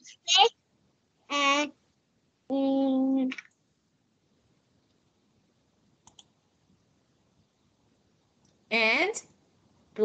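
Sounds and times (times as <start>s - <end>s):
faint quick clicks: 6.0s - 6.3s.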